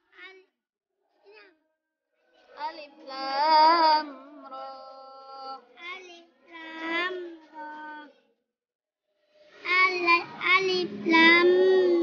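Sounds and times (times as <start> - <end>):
girl chanting melodic recitation: 2.5 - 8.2, 9.6 - 12.0.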